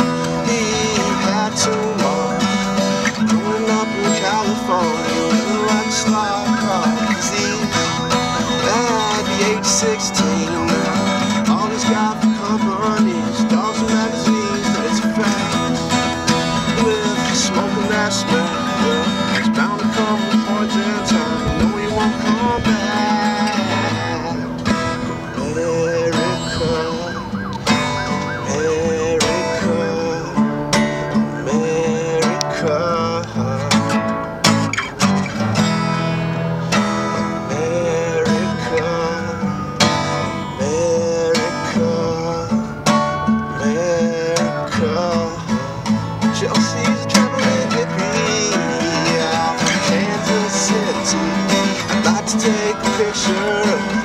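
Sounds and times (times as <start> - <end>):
acoustic guitar strumming: 0.0 - 54.0
wavering melody line: 0.0 - 54.0.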